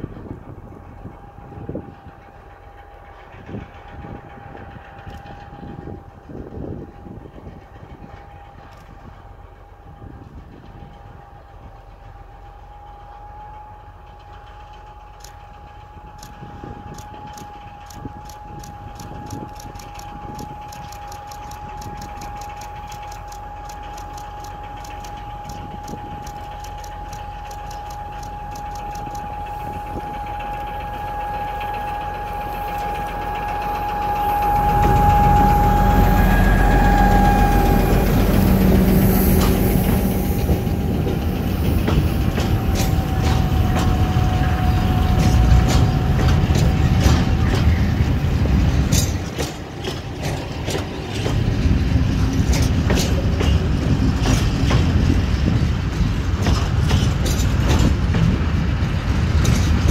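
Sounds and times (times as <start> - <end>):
diesel locomotive engine: 0.0 - 59.9
steady high tone: 14.2 - 49.4
loaded wagons rumbling: 14.5 - 59.9.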